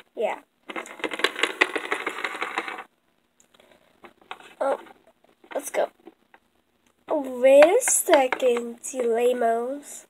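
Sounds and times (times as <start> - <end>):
plastic figurines clattering on wood: 0.7 - 2.9, 7.5 - 9.2.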